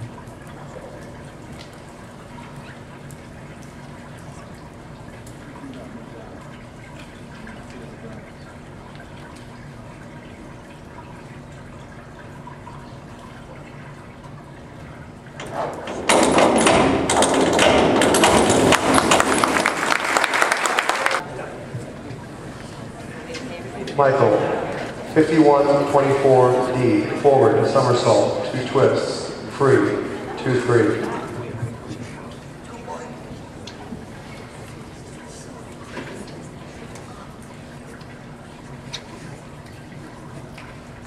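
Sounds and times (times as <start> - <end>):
echoing pool hall background: 0.0 - 41.0
crowd applause and cheering: 18.1 - 21.2.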